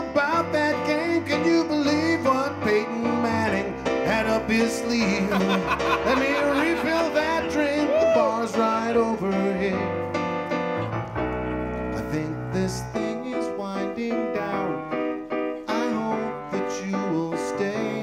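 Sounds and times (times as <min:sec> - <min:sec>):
keyboard playing piano chords: 0:00.0 - 0:18.0.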